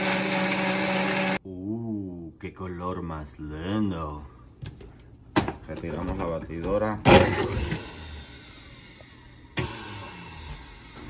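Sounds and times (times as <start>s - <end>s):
blender motor running: 0.0s - 1.4s, 7.1s - 11.0s.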